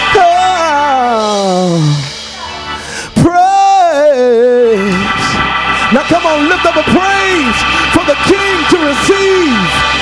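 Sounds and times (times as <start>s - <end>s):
man singing wordless ad-lib: 0.0s - 2.1s, 3.1s - 9.3s
organ chords: 0.0s - 10.0s.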